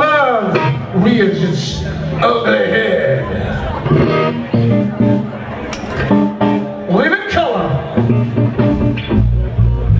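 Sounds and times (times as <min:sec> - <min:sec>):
live rock band playing: 0:00.0 - 0:09.9.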